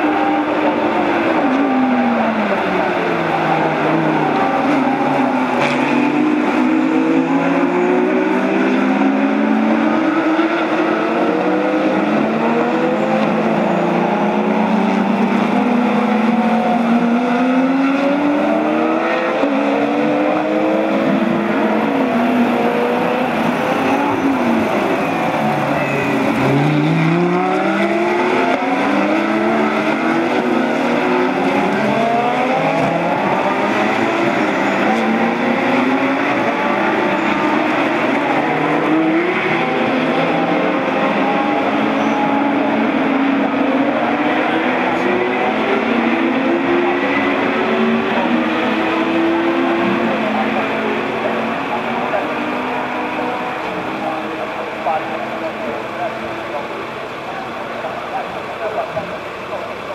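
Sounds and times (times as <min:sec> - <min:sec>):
race car engines: 0:00.0 - 0:59.9
race car passing close: 0:00.0 - 0:59.9.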